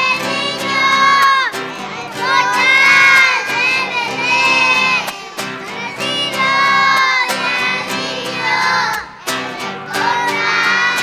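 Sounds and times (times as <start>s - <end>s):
acoustic guitar: 0.0s - 11.0s
children's choir singing: 0.0s - 11.0s.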